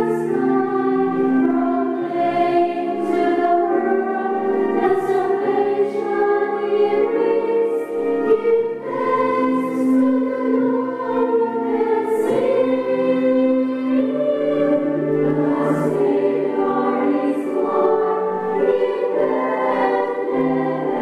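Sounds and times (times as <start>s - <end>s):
women's choir singing a hymn: 0.0s - 21.0s.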